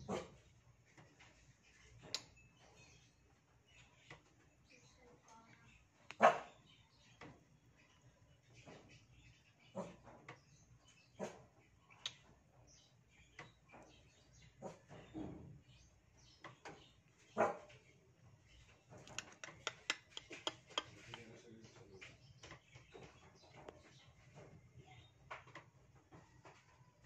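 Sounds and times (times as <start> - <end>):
dog bark: 0.0 - 0.4, 6.2 - 6.6, 11.2 - 11.4, 17.4 - 17.7
animal barking call: 6.2 - 6.6.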